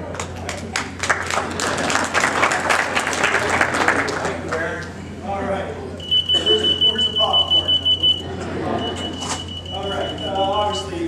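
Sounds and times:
pulsing electronic beep tone: 6.0 - 11.0.

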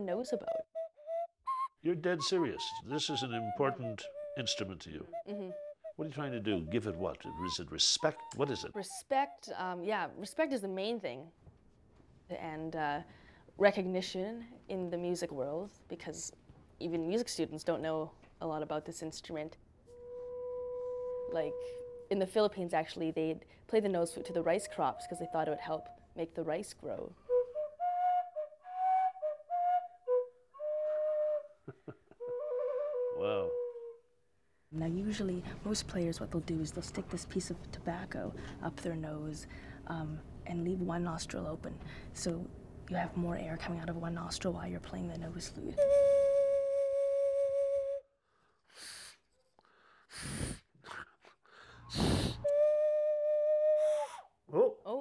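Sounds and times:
nose flute playing slow tune: 0.1 - 9.6, 19.9 - 22.1, 24.2 - 26.1, 27.2 - 34.1, 45.8 - 48.1, 52.0 - 54.7.

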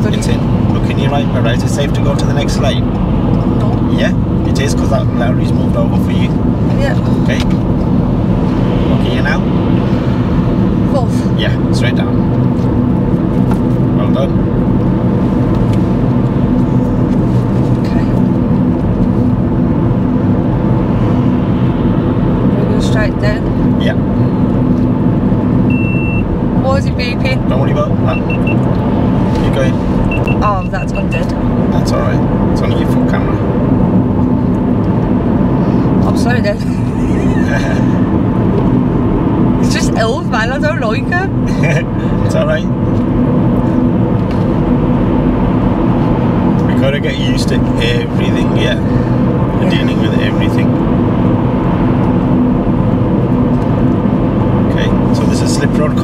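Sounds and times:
car engine and tyre noise: 0.0 - 56.0.

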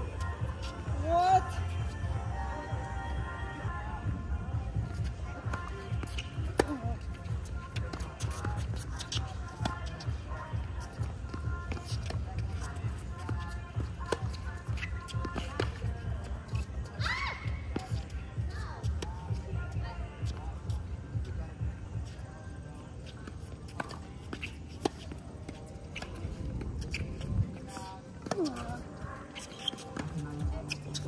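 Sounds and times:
tennis balls struck and bouncing: 5.4 - 10.0, 27.7 - 28.8.

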